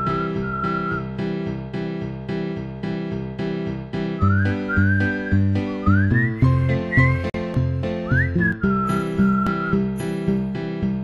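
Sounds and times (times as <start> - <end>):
whistled tune: 0.0 - 1.2, 4.1 - 10.3.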